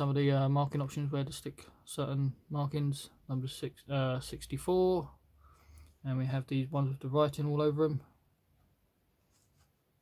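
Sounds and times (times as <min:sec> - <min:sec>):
paper rustling: 0:09.2 - 0:09.9.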